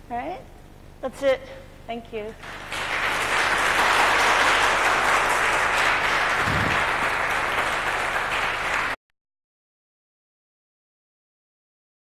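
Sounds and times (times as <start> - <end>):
audience applauding: 2.4 - 9.0.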